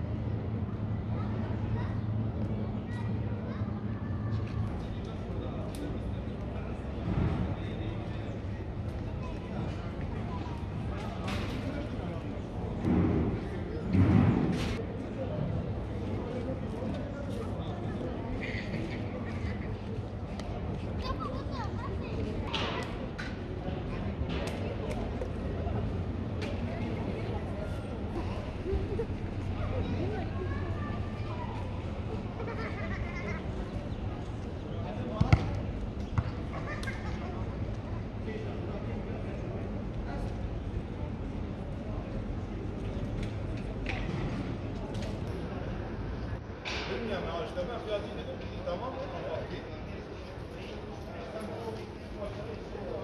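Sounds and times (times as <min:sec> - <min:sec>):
people's voices: 0:00.0 - 0:53.0
traffic hum: 0:17.0 - 0:46.8.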